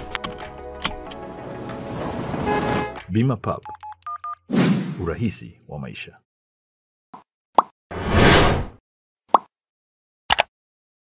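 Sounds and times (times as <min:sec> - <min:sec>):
whoosh: 0:08.0 - 0:08.7.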